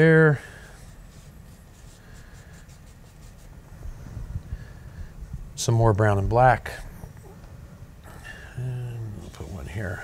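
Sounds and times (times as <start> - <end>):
brush strokes on canvas: 0.5 - 3.6, 9.2 - 10.0.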